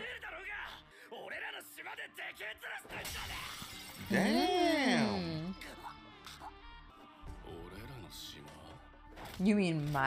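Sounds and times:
background music: 0:00.0 - 0:10.0
debris shattering crash: 0:02.9 - 0:04.3
character shouting: 0:04.0 - 0:05.5.

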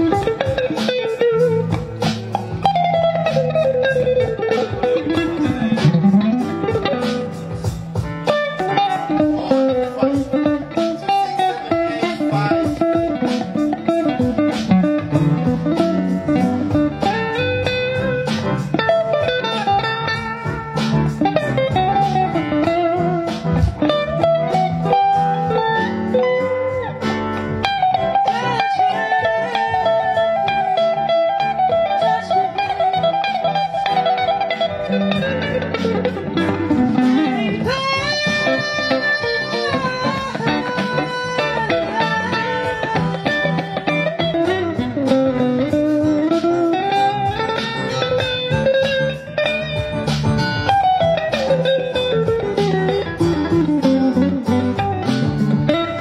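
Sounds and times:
electric guitar melody: 0:00.0 - 0:56.0.

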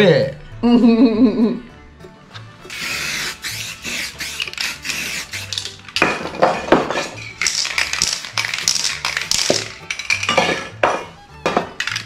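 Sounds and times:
background music: 0:00.0 - 0:12.0
spray paint can hissing: 0:02.7 - 0:06.2, 0:07.0 - 0:10.2
spray can shaken and clinking: 0:02.7 - 0:12.0.

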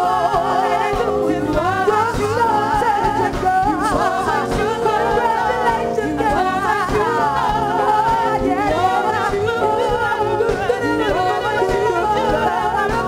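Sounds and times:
live band playing: 0:00.0 - 0:13.0
women singing soul: 0:00.0 - 0:13.0.

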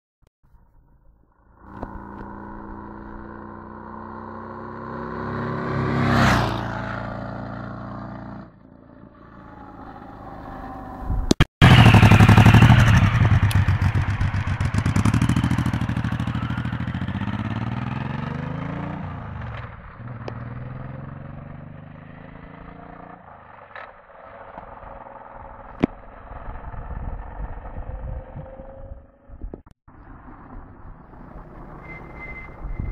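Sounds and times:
motorcycle passing by: 0:01.4 - 0:29.4
motorcycle accelerating hard: 0:01.4 - 0:32.9.

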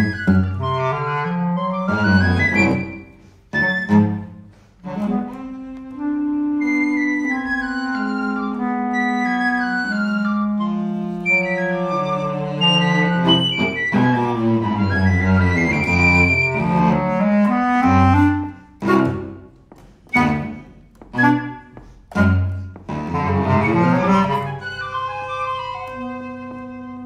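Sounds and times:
flute: 0:00.0 - 0:19.4, 0:20.1 - 0:27.0
bass clarinet: 0:00.0 - 0:27.0
cello: 0:00.0 - 0:27.0.

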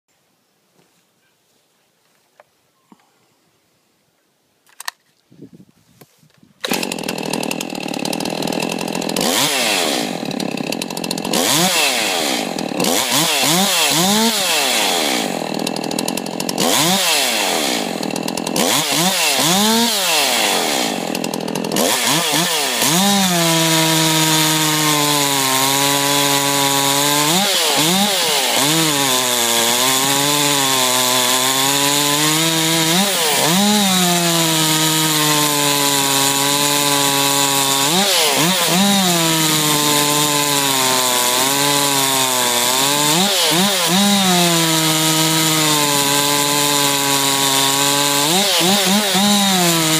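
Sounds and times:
chainsaw revving and cutting log: 0:06.6 - 0:49.9.

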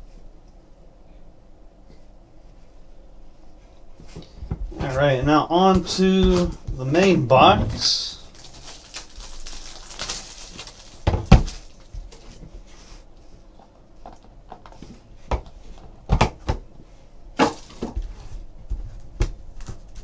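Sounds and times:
packaging rustling: 0:05.7 - 0:12.2, 0:17.5 - 0:18.1.

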